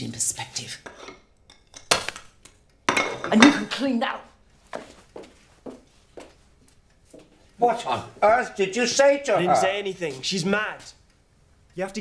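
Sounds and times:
china crockery clinking: 2.9s - 3.8s.

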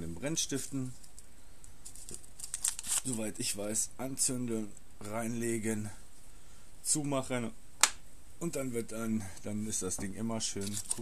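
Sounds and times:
foil wrapper crinkling and tearing: 1.8s - 3.3s.

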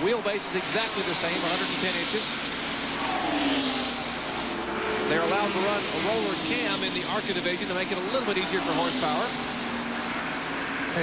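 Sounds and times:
stock car engines racing past: 0.0s - 11.0s.

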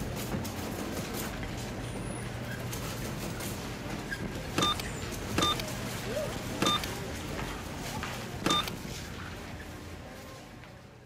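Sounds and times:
faint shop noise: 0.0s - 11.0s
short electronic beeps: 4.6s - 5.6s, 6.6s - 6.9s, 8.5s - 8.7s.

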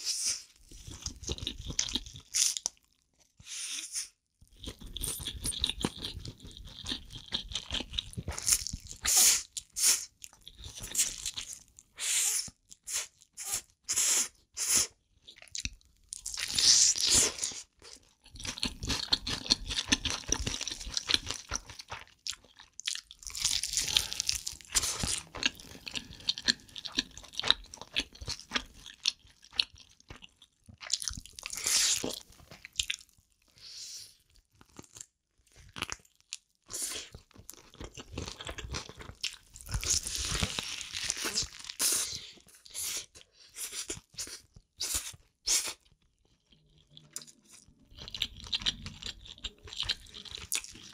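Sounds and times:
person crunching and chewing food: 0.0s - 3.3s, 4.4s - 50.9s.

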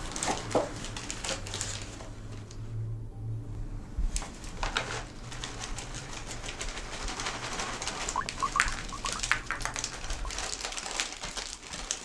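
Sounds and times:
high chirping squeaks: 8.2s - 10.5s.

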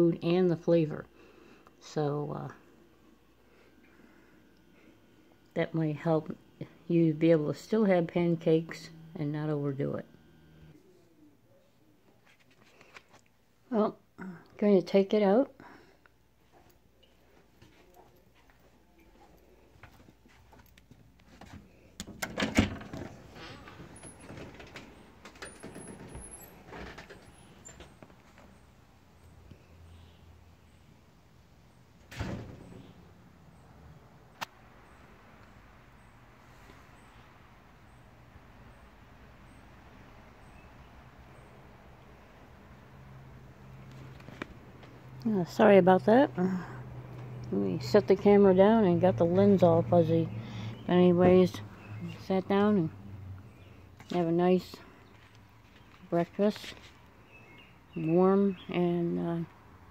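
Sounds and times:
faint low hum: 0.0s - 59.9s
clunks and knocks near camera: 21.4s - 28.5s.

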